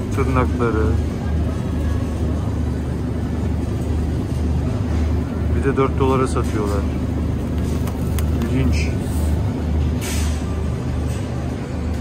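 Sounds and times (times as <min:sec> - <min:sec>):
supermarket low rumbling hum: 0:00.0 - 0:12.0.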